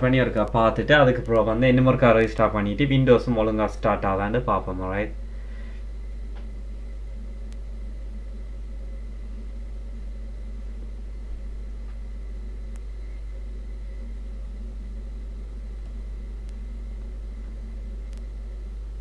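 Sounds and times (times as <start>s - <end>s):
electrical hum with hiss: 0.0s - 19.0s
faint clicks: 1.2s - 1.5s, 12.6s - 13.4s, 15.8s - 18.4s.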